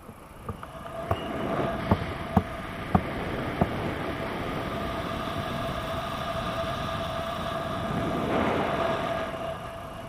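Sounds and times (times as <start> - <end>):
airflow rushing over microphone: 0.0 - 10.0.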